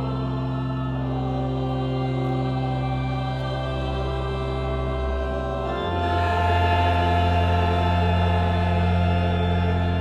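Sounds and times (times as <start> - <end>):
church choir singing: 0.0 - 10.0
organ: 0.0 - 10.0.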